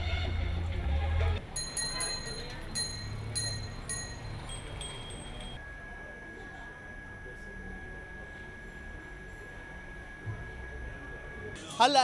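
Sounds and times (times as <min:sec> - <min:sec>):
low street hum: 0:00.0 - 0:11.7
high bell-like chimes: 0:01.5 - 0:05.6.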